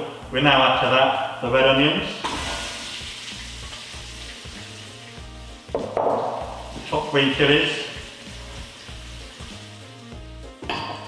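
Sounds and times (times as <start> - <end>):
onions sizzling in hot oil: 2.2 - 10.5.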